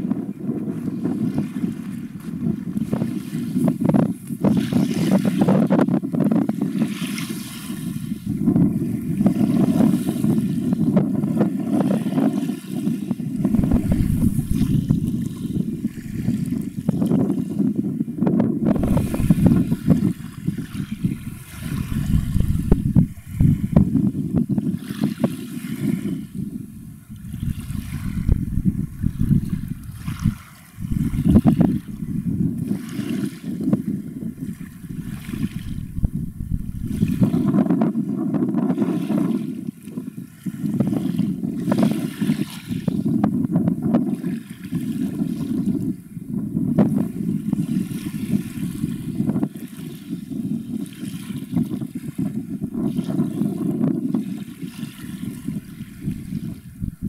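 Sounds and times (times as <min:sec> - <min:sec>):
wind buffeting microphone: 0:00.0 - 0:57.0
sharp microphone pops: 0:13.4 - 0:16.7, 0:18.7 - 0:23.9.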